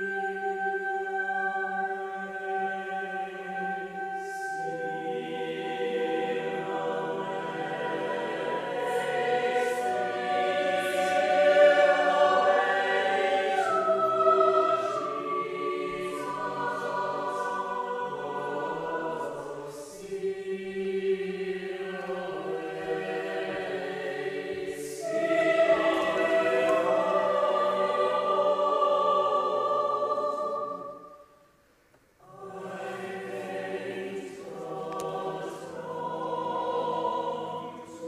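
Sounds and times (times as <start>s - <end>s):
choir singing: 0.0s - 31.5s, 32.2s - 38.0s.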